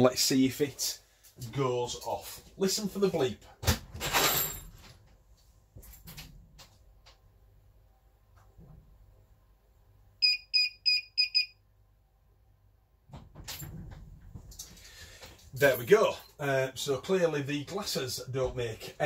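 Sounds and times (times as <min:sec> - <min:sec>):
short high beeps: 0:10.2 - 0:11.6.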